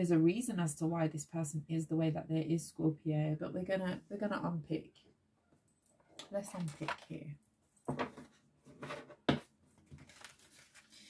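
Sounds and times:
cards rustling and flicking: 9.8s - 11.0s.

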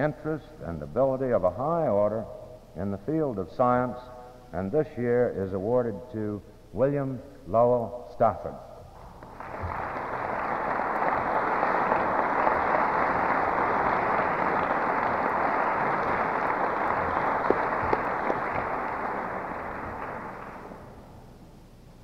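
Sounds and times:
audience applauding: 9.2s - 21.1s.

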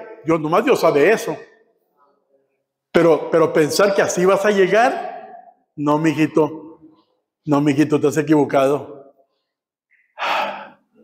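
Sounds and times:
man breathing into microphone: 10.2s - 10.9s.

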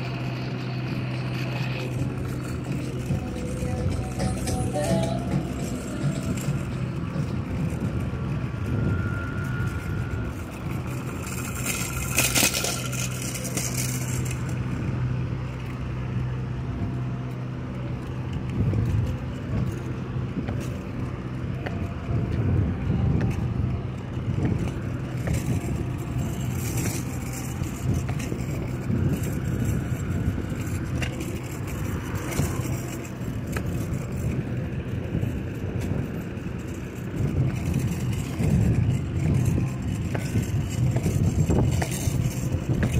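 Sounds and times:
low motor vehicle rumble: 0.0s - 42.9s.

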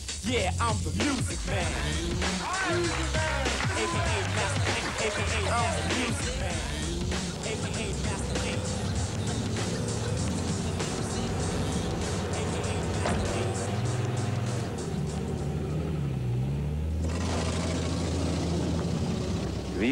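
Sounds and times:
hip-hop drum beat: 0.0s - 15.0s
low bass line: 0.0s - 17.1s
low steady rumble: 0.5s - 4.7s, 5.3s - 19.9s.

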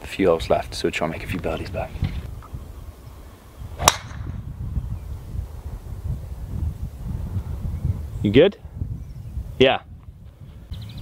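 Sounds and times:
golf ball struck by driver: 3.8s - 4.4s.

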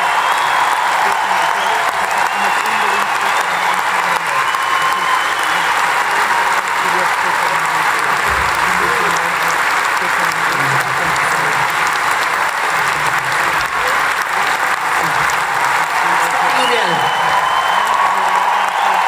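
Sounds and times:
arena crowd applauding: 0.0s - 19.0s.

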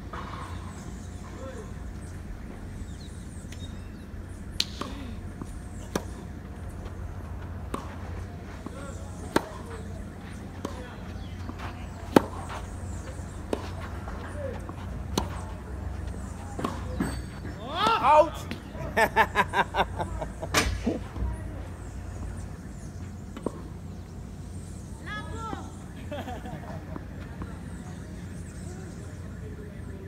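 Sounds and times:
tennis ball struck by racket: 4.5s - 6.2s, 8.6s - 10.0s, 11.9s - 14.3s, 15.0s - 15.5s, 16.1s - 17.2s
tennis ball bouncing on court: 4.5s - 18.7s.

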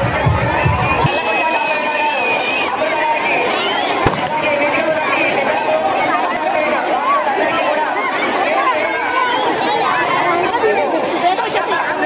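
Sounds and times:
crowd voices: 0.0s - 12.0s
fireworks banging: 4.0s - 5.1s.

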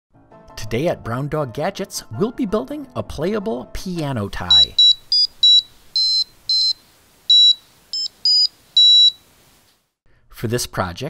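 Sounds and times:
high-pitched speaker beeps: 4.4s - 9.2s.

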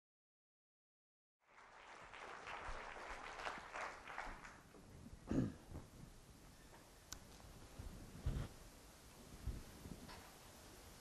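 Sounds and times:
audience applauding: 1.4s - 4.7s.

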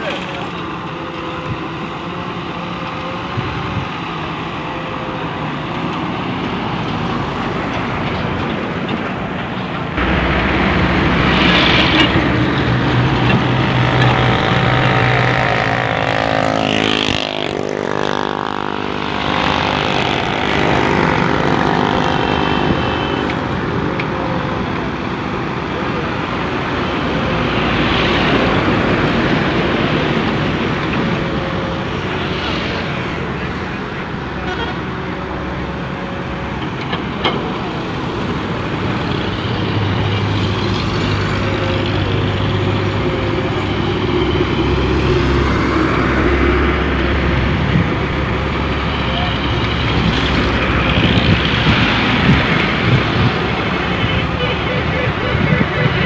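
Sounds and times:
excavator diesel engine: 0.0s - 56.0s
road traffic passing: 0.0s - 56.0s.

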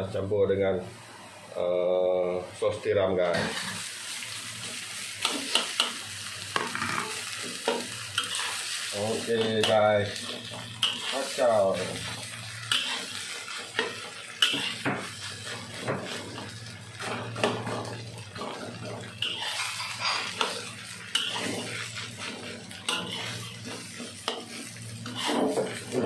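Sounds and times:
frying sizzle: 0.0s - 26.0s
spatula scraping a wok: 3.3s - 3.9s, 6.6s - 26.0s.

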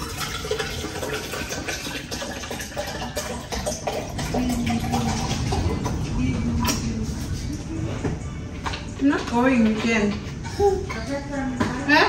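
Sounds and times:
water pouring into a tumbler: 0.0s - 6.0s.

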